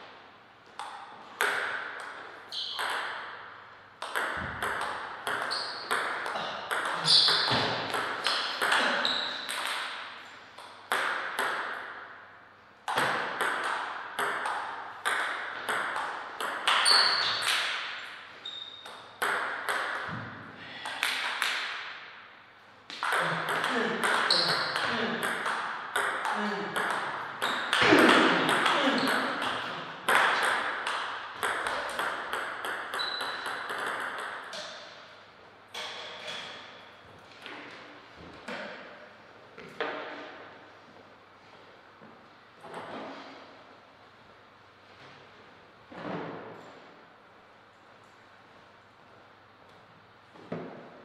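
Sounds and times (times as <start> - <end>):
table tennis ball knocking: 0.8 - 3.3, 4.0 - 10.0, 12.9 - 17.9, 18.8 - 20.4, 22.9 - 34.8.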